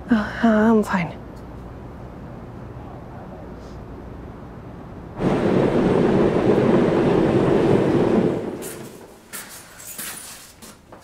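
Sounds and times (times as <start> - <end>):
passing train rumble: 1.2 - 9.3.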